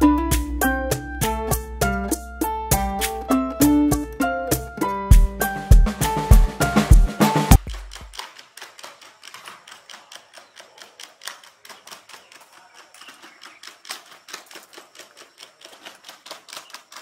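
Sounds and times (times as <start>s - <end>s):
robot feet tapping on stone: 5.1s - 17.0s
robot leg joints clicking: 7.6s - 17.0s.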